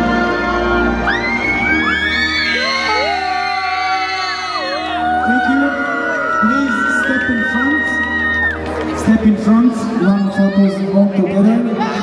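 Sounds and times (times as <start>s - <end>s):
music with long held chords: 0.0s - 12.0s
crowd whooping and shouting: 0.6s - 12.0s.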